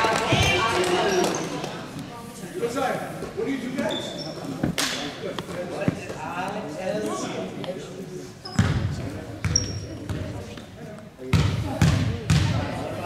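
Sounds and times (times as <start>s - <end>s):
people talking: 0.0s - 13.0s.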